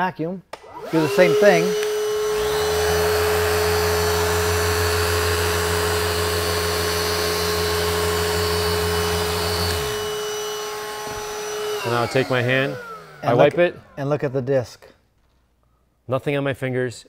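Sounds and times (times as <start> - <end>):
sander humming on wood: 0.6 - 14.4
shop vacuum whine: 0.6 - 14.5.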